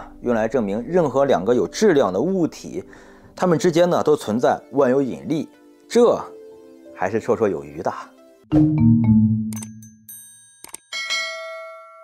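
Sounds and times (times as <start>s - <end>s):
short ding: 8.6s - 12.0s
mouse click: 9.5s - 9.8s
bright bell chime: 9.5s - 12.0s.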